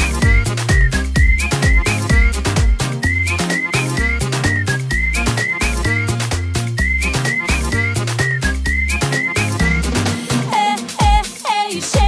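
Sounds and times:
whistle-like synth lead: 0:00.0 - 0:10.2
bass line: 0:00.0 - 0:10.5
drum beat: 0:00.0 - 0:12.0.

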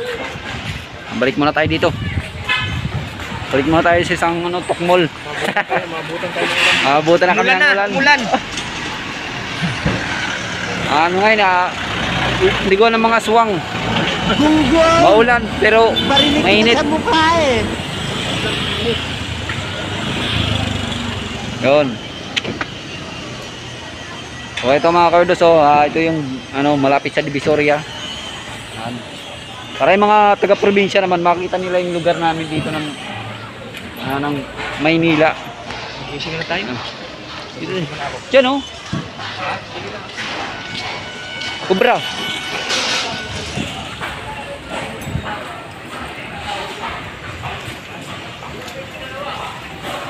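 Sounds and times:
street traffic noise: 0:00.0 - 0:50.0
people talking: 0:01.0 - 0:08.6, 0:10.6 - 0:22.1, 0:23.0 - 0:41.0, 0:41.6 - 0:50.0.

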